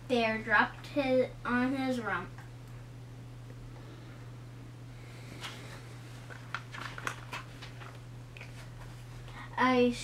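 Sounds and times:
steady low hum: 0.0s - 10.0s
book pages rustling: 5.4s - 9.2s.

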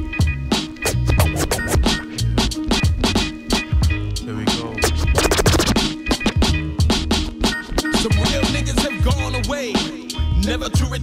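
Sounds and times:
hip hop beat and bass line: 0.0s - 11.0s
turntable scratching: 0.6s - 3.6s, 4.5s - 9.2s.

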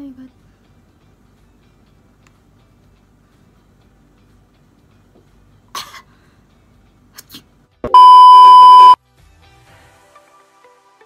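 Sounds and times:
electronic censor beep: 7.9s - 9.0s.

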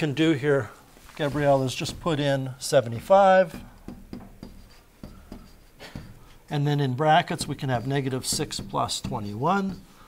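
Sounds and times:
stylus tapping and scratching screen: 1.0s - 10.0s.

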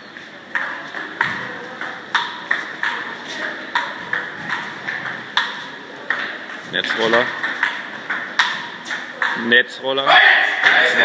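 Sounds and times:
table tennis ball clicking: 0.5s - 9.5s.

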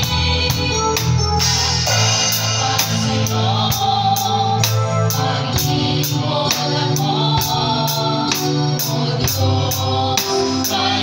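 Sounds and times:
drum kit beat: 0.0s - 11.0s
voices singing gospel song: 0.0s - 11.0s.

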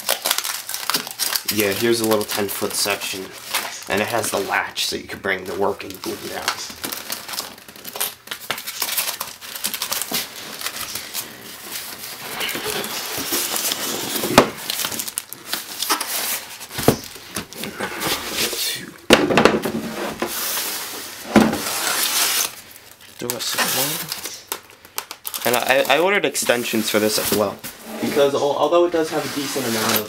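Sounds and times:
foam packaging rustling and scraping: 0.0s - 18.8s, 19.6s - 30.0s.

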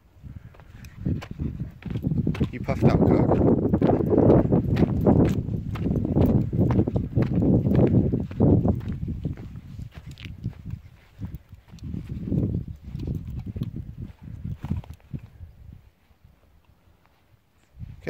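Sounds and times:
footsteps on stony path: 0.3s - 17.9s
footsteps on grass: 0.4s - 17.4s.

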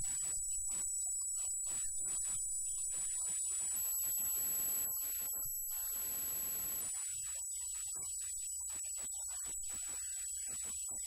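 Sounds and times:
high-pitched whine: 0.0s - 6.8s.

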